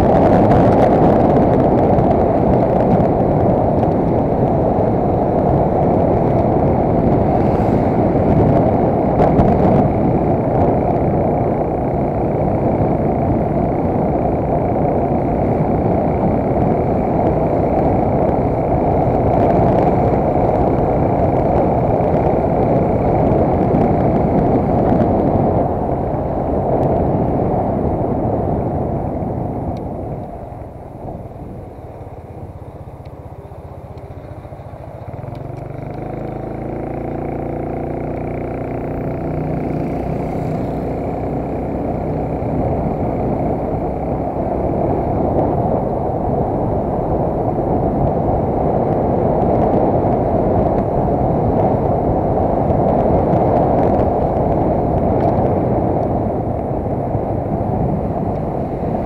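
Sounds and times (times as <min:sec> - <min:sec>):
engine hum: 0:00.0 - 0:59.0
vehicle rushing noise: 0:00.0 - 0:59.0.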